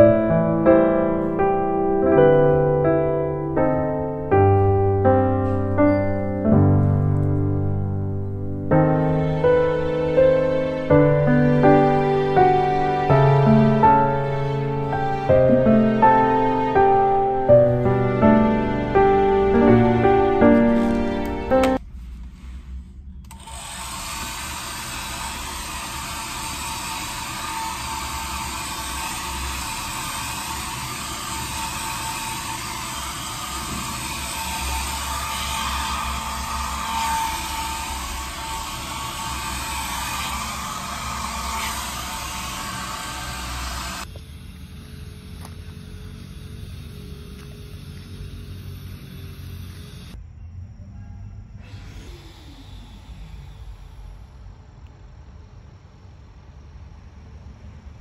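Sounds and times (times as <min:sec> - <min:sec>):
hair dryer running: 0:23.3 - 0:44.1.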